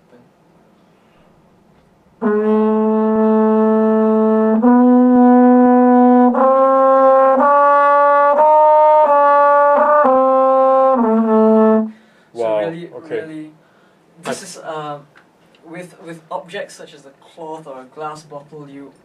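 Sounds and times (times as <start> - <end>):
french horn slow phrase: 2.2 - 7.5.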